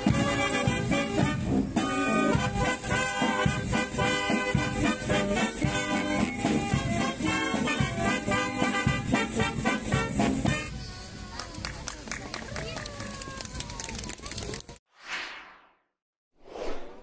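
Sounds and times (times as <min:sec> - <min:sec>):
brass and saxophone band playing: 0:00.0 - 0:10.8
crowd voices: 0:00.0 - 0:14.8
short whooshes: 0:14.9 - 0:17.0.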